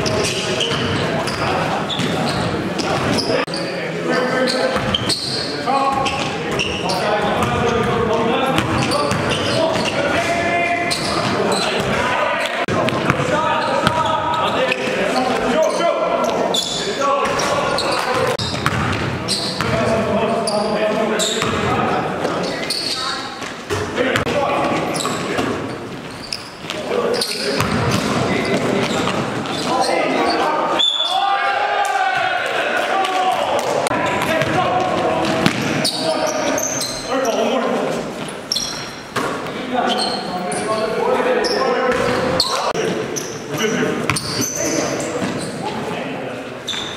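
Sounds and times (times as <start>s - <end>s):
basketball bouncing on gym floor: 12.7s - 14.1s, 18.4s - 19.8s, 27.6s - 29.2s, 34.2s - 35.8s.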